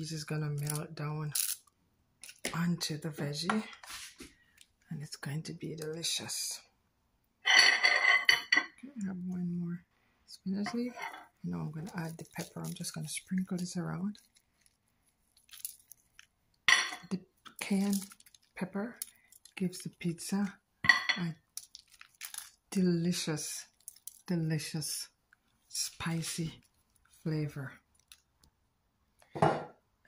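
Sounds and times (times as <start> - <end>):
kitchen items clattering: 7.4 - 8.8, 10.6 - 13.5, 16.7 - 18.3
pepper flakes rattling from container: 11.9 - 16.3, 17.8 - 19.6, 21.5 - 22.6, 23.7 - 24.3.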